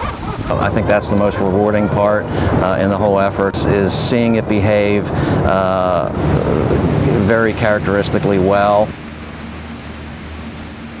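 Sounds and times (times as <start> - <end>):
constant noise haze: 0.0 - 11.0
vehicle engine humming: 0.0 - 11.0.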